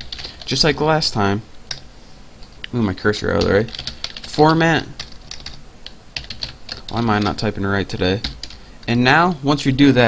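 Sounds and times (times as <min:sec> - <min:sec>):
typing on keyboard: 0:03.4 - 0:04.3, 0:05.0 - 0:07.5.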